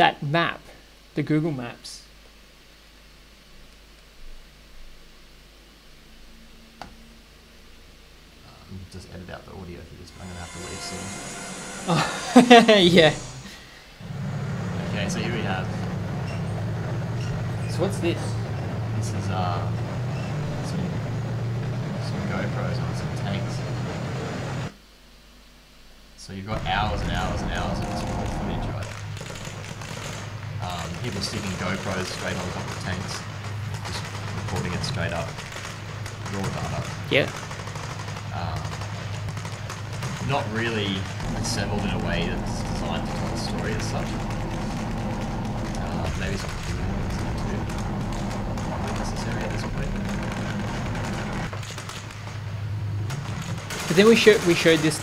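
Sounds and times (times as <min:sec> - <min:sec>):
faint hiss: 0:00.0 - 0:14.1
tank diesel engine rumbling: 0:12.3 - 0:24.7, 0:26.5 - 0:29.3, 0:40.4 - 0:51.6.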